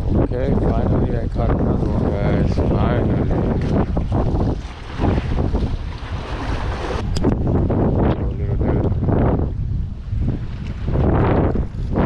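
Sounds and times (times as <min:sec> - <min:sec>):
waves washing against rocks: 0:00.0 - 0:12.0
wind buffeting microphone: 0:00.0 - 0:12.0.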